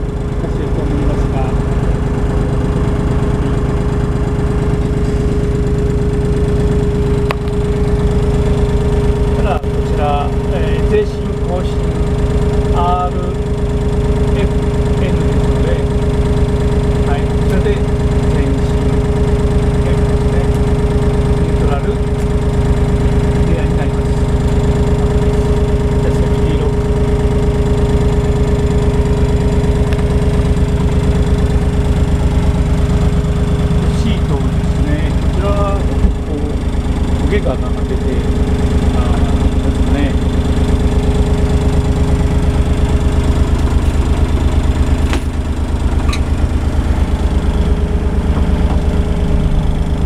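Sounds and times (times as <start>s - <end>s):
diesel engine running steadily: 0.0s - 50.0s
engine whine: 0.0s - 50.0s.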